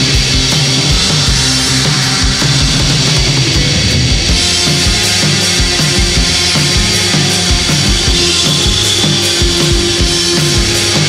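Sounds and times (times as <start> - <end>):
rock band playing: 0.0 - 11.0.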